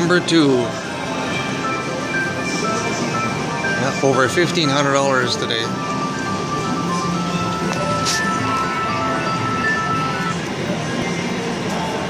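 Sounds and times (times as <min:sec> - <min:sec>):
slot machine win jingle: 0:00.0 - 0:10.7.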